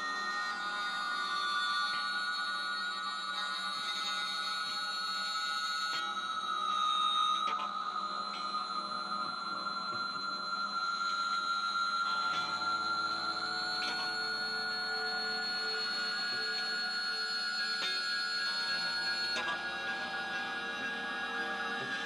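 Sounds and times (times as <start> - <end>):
sustained ringing guitar drones: 0.0 - 22.0.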